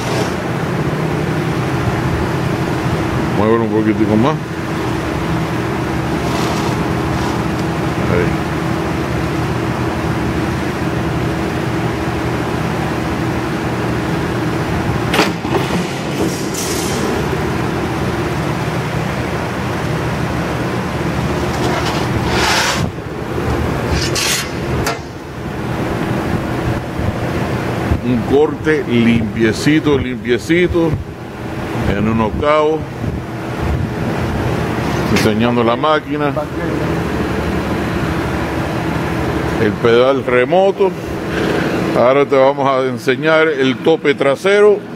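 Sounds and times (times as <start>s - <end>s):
plate shear motor hum: 0.0s - 3.3s, 4.5s - 28.0s
shear cutting steel plate: 21.4s - 23.0s, 23.8s - 25.2s.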